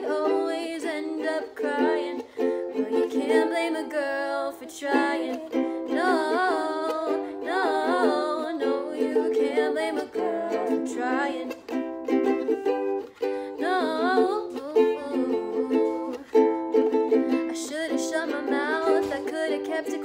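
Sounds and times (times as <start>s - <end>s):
girls singing: 0.0s - 11.8s, 13.5s - 16.3s, 17.1s - 20.0s
ukulele strumming chords: 0.0s - 20.0s.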